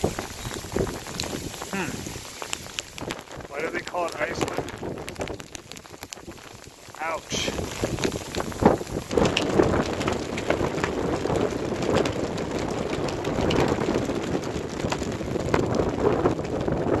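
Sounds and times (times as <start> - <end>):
sleet pattering: 0.0 - 14.1
gusty wind buffeting microphone: 0.0 - 17.0.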